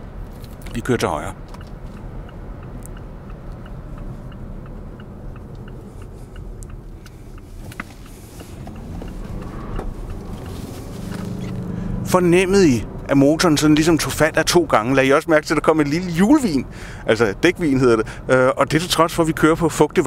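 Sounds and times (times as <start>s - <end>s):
car engine hum: 0.0s - 20.0s
road noise: 0.0s - 20.0s
turn signal ticking: 0.0s - 20.0s.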